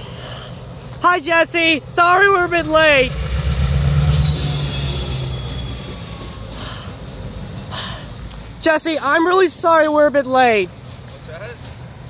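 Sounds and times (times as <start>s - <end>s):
diesel locomotive rumble: 0.0s - 12.0s
high wheel squeal: 3.9s - 7.2s.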